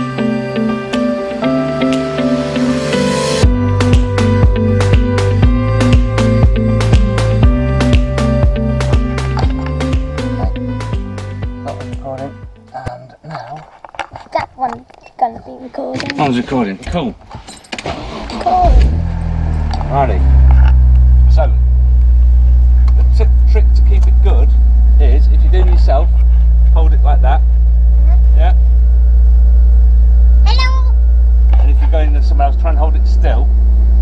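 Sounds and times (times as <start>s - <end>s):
car engine idling: 0.0s - 13.1s, 17.7s - 34.0s
voice: 11.7s - 13.6s, 14.3s - 17.2s, 18.4s - 18.8s, 19.8s - 20.3s, 21.3s - 21.6s, 23.0s - 27.4s, 28.0s - 28.6s, 30.5s - 30.9s, 31.5s - 33.5s.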